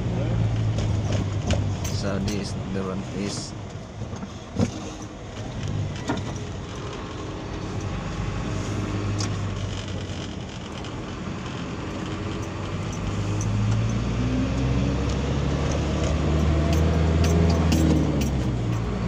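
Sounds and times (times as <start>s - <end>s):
car engine and road hum: 0.0s - 19.0s.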